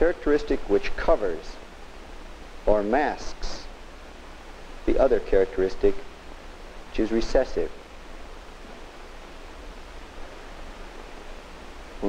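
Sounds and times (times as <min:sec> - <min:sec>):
film soundtrack hiss: 0:00.0 - 0:12.0
low hum: 0:01.3 - 0:12.0.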